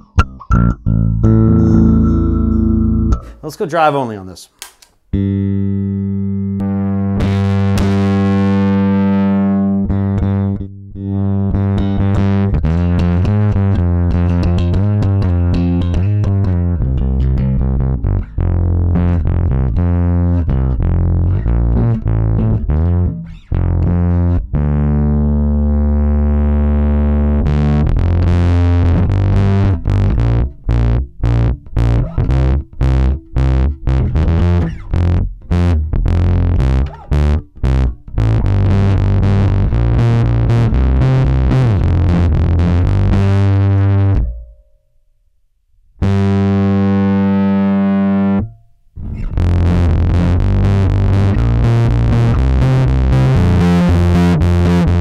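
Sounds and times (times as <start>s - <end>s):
distorted electric bass guitar: 0.0s - 3.5s, 5.1s - 44.8s, 46.0s - 55.0s.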